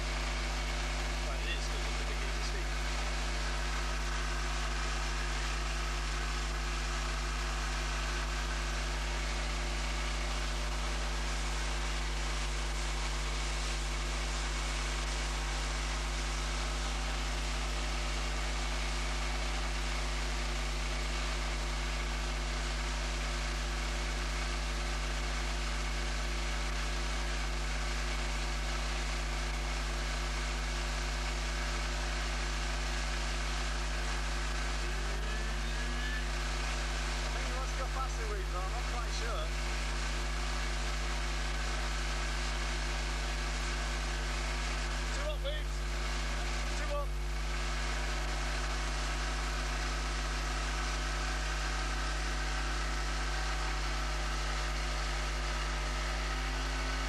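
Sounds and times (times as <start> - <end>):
outboard motor running: 0.0 - 57.0.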